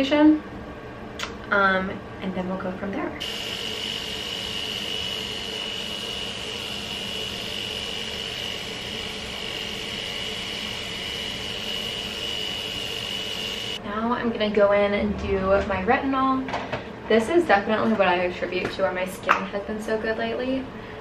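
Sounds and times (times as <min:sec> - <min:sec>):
hair trimmer whining: 0:03.2 - 0:13.8.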